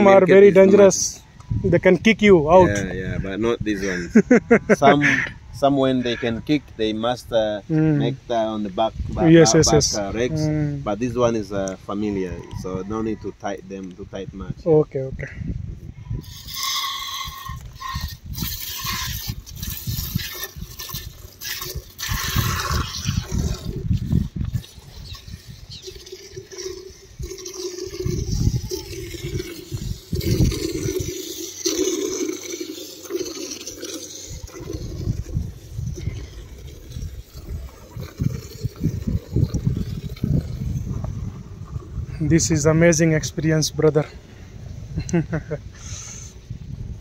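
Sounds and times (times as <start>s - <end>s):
milk squirting into plastic jug: 16.2s - 42.0s.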